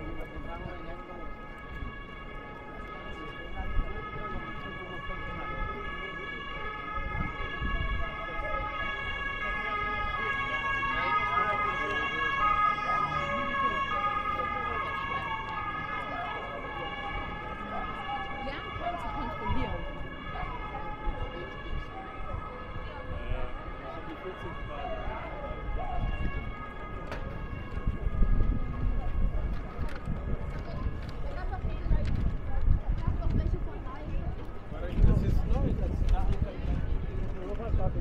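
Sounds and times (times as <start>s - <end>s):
voices of passers-by: 0.0s - 38.0s.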